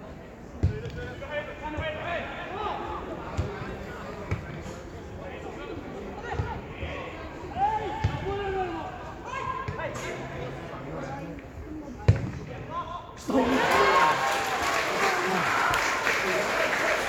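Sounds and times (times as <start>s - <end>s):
players shouting: 13.2s - 17.0s.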